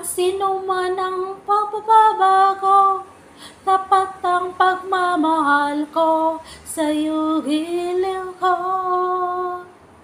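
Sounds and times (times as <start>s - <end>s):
singer breathing: 3.2s - 3.7s, 6.4s - 6.7s.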